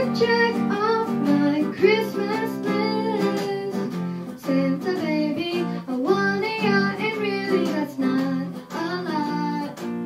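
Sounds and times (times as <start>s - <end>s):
girl singing into a microphone: 0.0s - 10.0s
guitar accompaniment: 0.0s - 10.0s.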